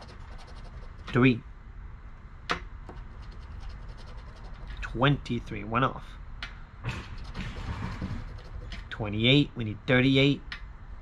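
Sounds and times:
coin scratching lottery ticket: 0:00.0 - 0:01.2, 0:03.0 - 0:04.8, 0:07.1 - 0:08.9.

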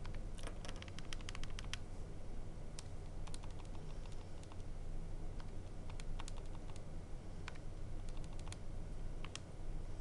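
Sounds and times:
calculator keys clicking: 0:00.0 - 0:01.8, 0:03.3 - 0:04.6, 0:05.4 - 0:06.8, 0:07.5 - 0:08.6.

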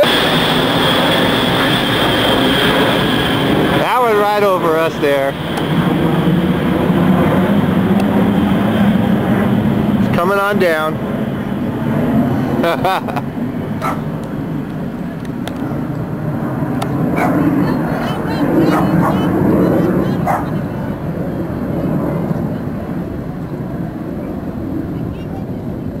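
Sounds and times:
jet aircraft rumbling overhead: 0:00.0 - 0:26.0.

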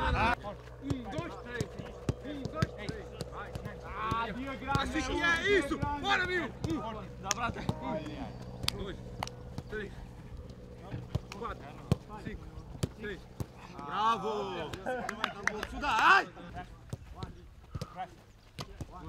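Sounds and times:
men shouting: 0:00.0 - 0:08.4, 0:10.9 - 0:16.4
football kicks thudding: 0:00.9 - 0:07.9, 0:10.8 - 0:13.6.

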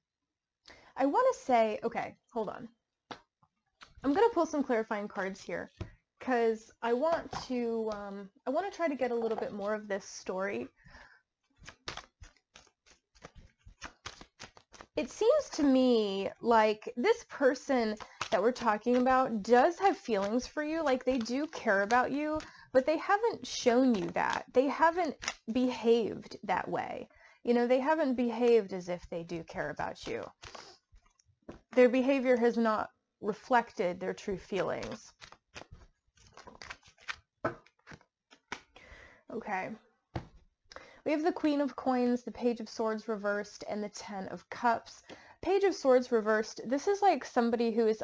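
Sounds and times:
cards clicking and rustling: 0:11.6 - 0:15.7, 0:17.8 - 0:22.5, 0:23.8 - 0:24.4, 0:25.1 - 0:25.4, 0:34.5 - 0:38.8.

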